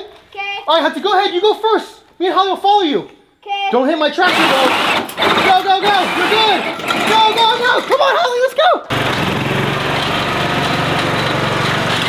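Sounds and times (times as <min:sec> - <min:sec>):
children's voices: 0:03.4 - 0:03.9
lawn tractor engine running: 0:04.3 - 0:07.9, 0:08.9 - 0:12.0.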